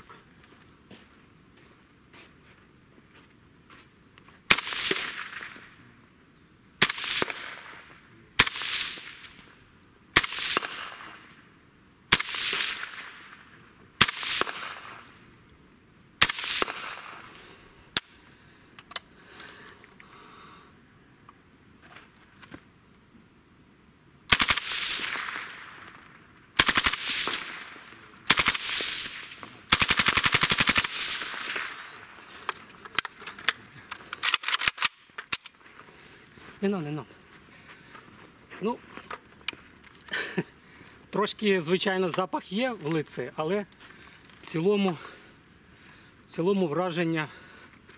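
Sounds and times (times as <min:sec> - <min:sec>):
suppressed rifle shots with echo: 0:04.5 - 0:05.7, 0:06.8 - 0:09.4, 0:10.2 - 0:11.5, 0:12.1 - 0:15.1, 0:16.2 - 0:17.3, 0:24.3 - 0:26.0, 0:26.6 - 0:32.2
rapid gunfire burst: 0:24.3 - 0:25.3, 0:26.6 - 0:27.7, 0:28.3 - 0:31.8.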